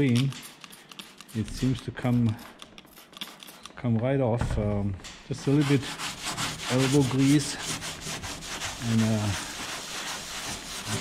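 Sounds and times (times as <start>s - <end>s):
scouring pad scrubbing metal: 5.4s - 11.0s.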